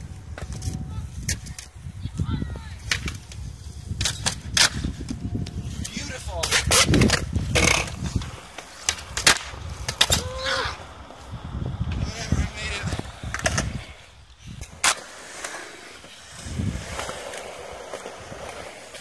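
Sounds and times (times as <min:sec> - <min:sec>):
skateboard wheels rolling on concrete: 0:00.0 - 0:19.0
skateboard deck snapping: 0:02.8 - 0:05.2, 0:06.4 - 0:10.5
skateboard clacking on ground: 0:02.8 - 0:10.9.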